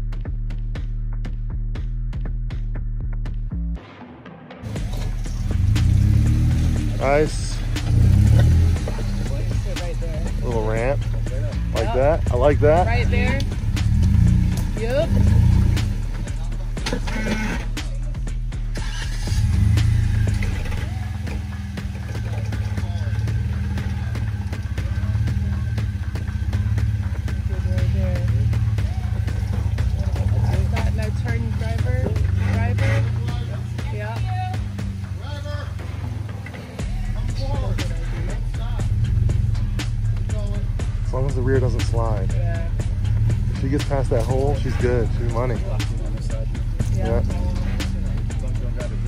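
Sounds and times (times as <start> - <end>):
buggy engine rumbling at low revs: 4.6 - 49.0.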